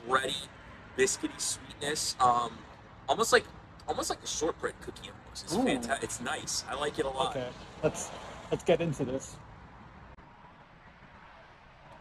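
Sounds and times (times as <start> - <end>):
low rumble with hiss: 0.0 - 9.3.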